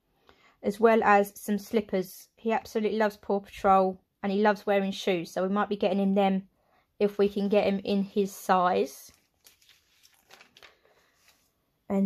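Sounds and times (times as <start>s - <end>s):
magazine page turning: 9.0s - 11.6s.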